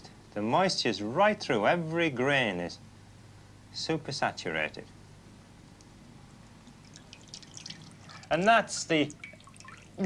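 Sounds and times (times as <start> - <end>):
water dripping into a bowl: 6.5 - 10.0.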